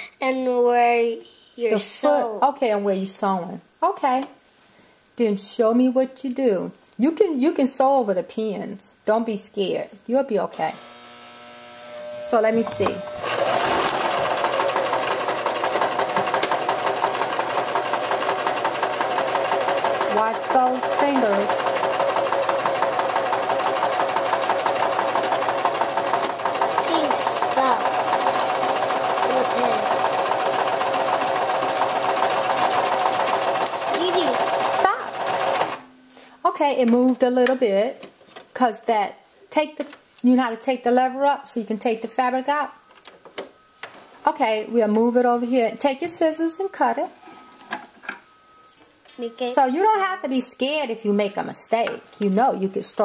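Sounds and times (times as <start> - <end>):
sewing machine stitching: 12.6 - 35.8.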